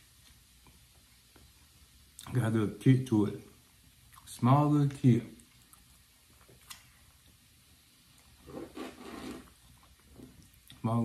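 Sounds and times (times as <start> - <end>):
sipping and chewing: 4.1 - 4.3.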